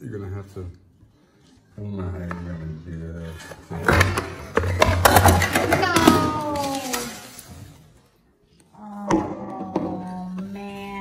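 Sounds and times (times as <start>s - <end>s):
ice cracking and clattering: 4.8s - 7.6s.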